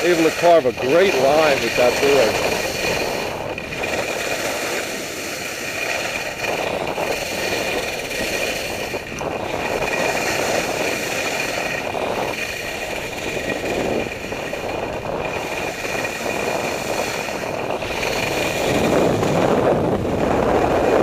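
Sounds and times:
snowboard carving through snow: 0.0s - 21.0s
wind on microphone: 0.0s - 21.0s.

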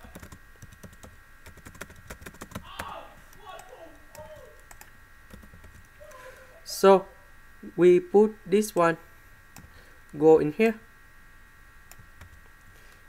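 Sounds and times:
keyboard typing clicks: 0.0s - 2.6s, 3.3s - 5.9s.

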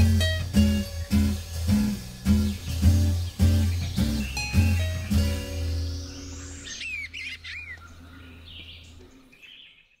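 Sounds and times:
whistled bird calls: 2.3s - 8.8s.

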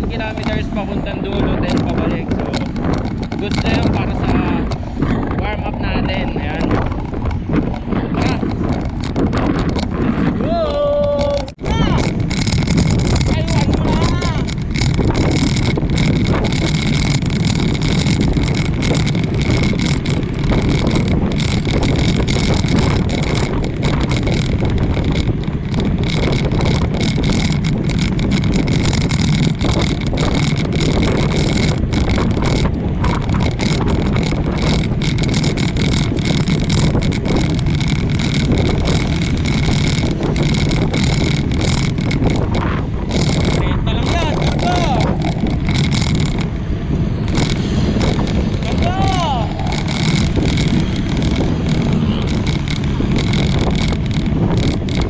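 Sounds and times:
wind rushing over microphone: 0.0s - 55.0s.

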